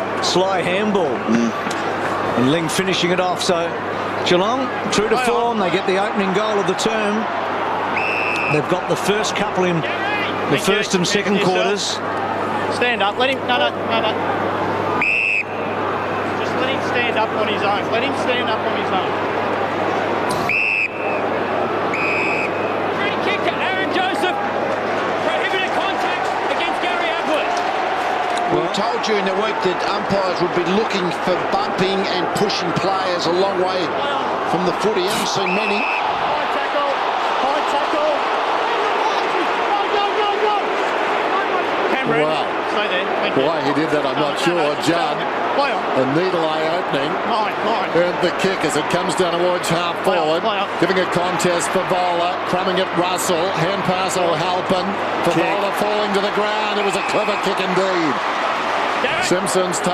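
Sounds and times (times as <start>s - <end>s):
crowd noise: 0.0s - 59.9s
person calling out: 1.3s - 1.6s
whistle blast: 8.0s - 8.6s, 15.0s - 15.7s, 20.3s - 21.2s, 21.9s - 22.7s, 35.4s - 36.1s.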